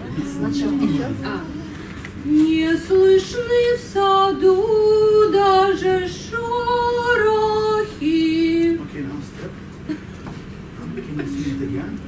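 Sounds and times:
woman singing long held notes: 0.0s - 8.7s.

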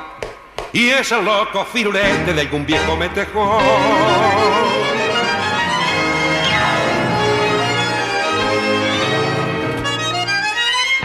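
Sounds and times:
tango orchestra with violins and bandoneon: 2.0s - 11.0s.

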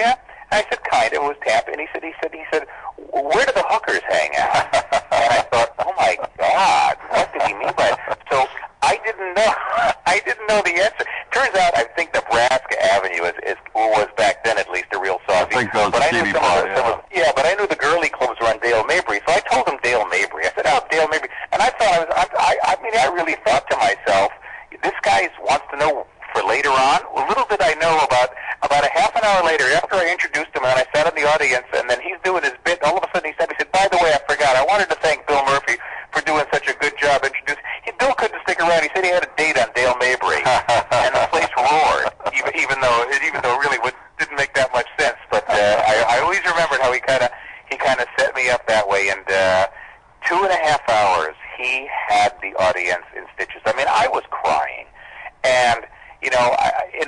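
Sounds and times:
man speaking in studio: 0.0s - 57.0s
man speaking over telephone: 0.0s - 57.0s
men talking: 0.0s - 57.0s.

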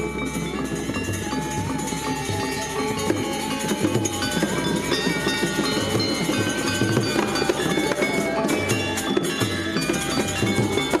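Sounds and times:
gamelan playing: 0.0s - 11.0s.

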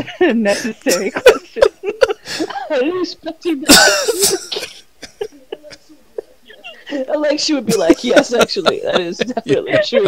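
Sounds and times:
person laughing or coughing: 0.5s - 2.6s, 3.7s - 5.8s.

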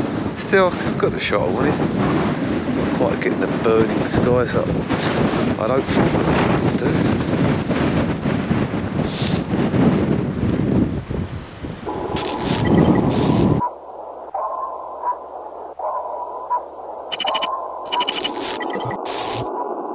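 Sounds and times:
wind buffeting microphone: 0.0s - 19.9s
short mid-pitched beeps: 11.9s - 13.8s, 16.4s - 19.6s
crackling static: 11.9s - 19.9s
sharp clicks: 12.2s - 13.7s, 17.1s - 19.6s.

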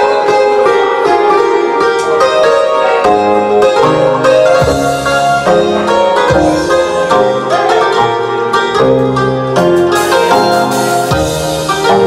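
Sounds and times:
keyboard bass notes: 0.0s - 12.0s
plucked keyboard melody: 0.0s - 12.0s.

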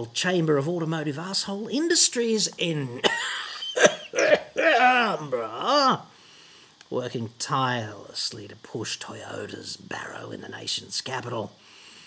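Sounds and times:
man coughing: 3.0s - 5.8s.

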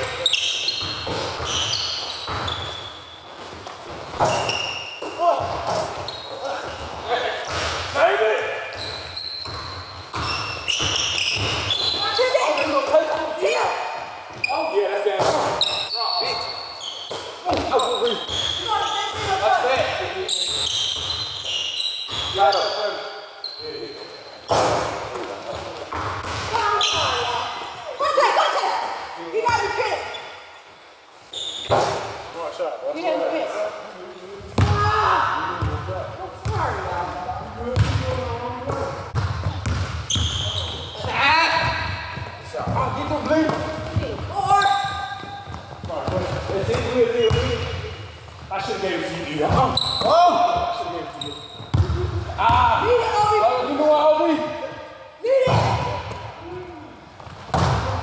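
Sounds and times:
basketball bouncing on court: 8.7s - 13.3s, 17.1s - 21.3s, 24.5s - 27.4s, 34.6s - 35.0s, 35.6s - 36.9s, 37.7s - 48.5s, 51.5s - 53.2s, 57.2s - 58.0s
players calling out: 39.5s - 54.5s.

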